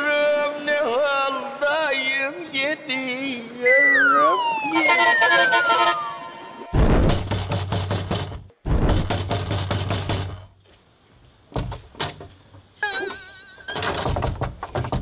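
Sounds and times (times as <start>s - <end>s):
film music: 3.7s - 6.8s.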